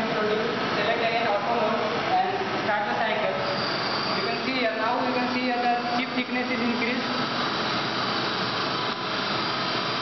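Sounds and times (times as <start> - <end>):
lathe spindle whirring: 0.0 - 10.0.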